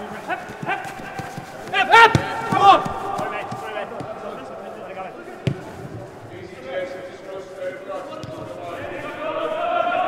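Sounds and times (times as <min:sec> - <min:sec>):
distant players shouting: 0:00.6 - 0:04.6
football kick thud echoing: 0:02.0 - 0:04.2, 0:05.4 - 0:05.8.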